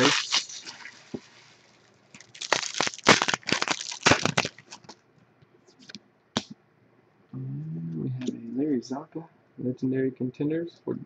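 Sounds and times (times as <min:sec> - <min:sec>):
foil wrapper crinkling and tearing: 0:00.0 - 0:01.1, 0:02.1 - 0:05.0.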